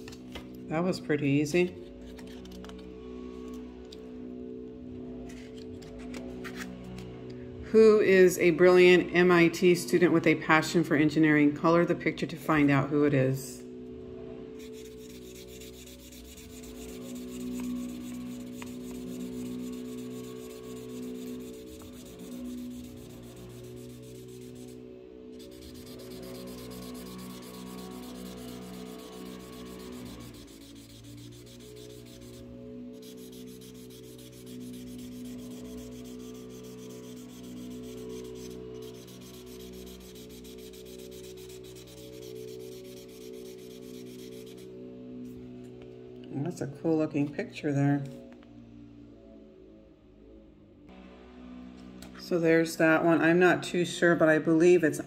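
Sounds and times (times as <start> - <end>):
soft background music: 0.0 - 55.0
marker tip rubbing on paper: 14.7 - 24.8, 25.4 - 32.4, 33.0 - 44.7.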